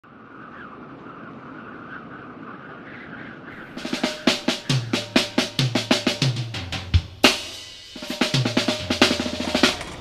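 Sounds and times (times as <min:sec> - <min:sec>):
background hiss: 0:03.5 - 0:10.0
drum beat: 0:03.8 - 0:09.9.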